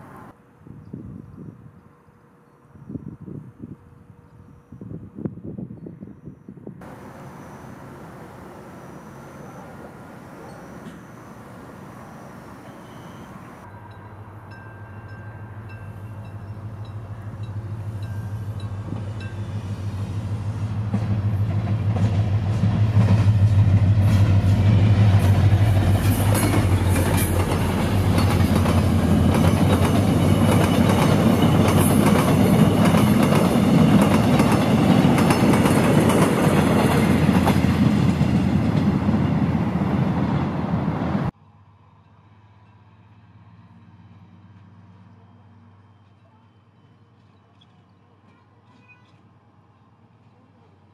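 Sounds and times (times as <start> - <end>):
diesel train engine hum: 0.0 - 47.6
train wheels clacking on rails: 6.8 - 11.6, 15.7 - 39.9.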